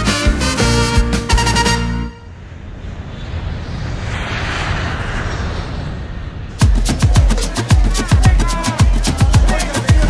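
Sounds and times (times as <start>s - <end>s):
hiss of passing vehicles: 2.5s - 7.2s.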